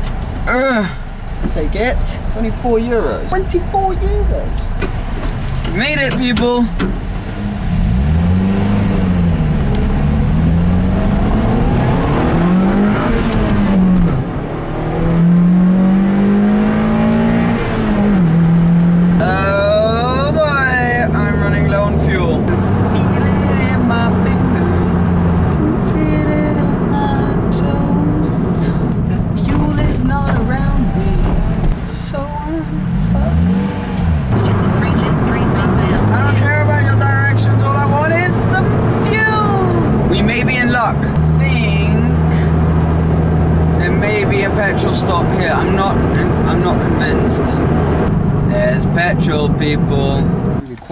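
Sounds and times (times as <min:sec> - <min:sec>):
car engine accelerating: 0:00.0 - 0:50.9.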